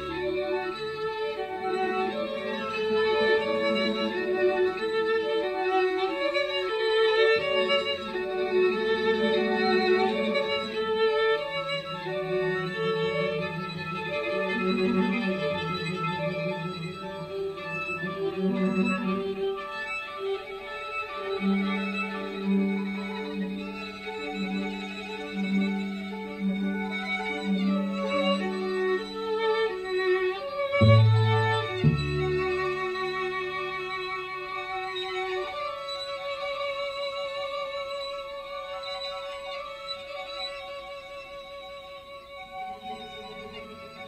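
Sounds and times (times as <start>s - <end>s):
low held cello notes: 0.0s - 44.0s
rippling high violin notes: 0.0s - 44.0s
string quartet playing: 0.0s - 44.0s.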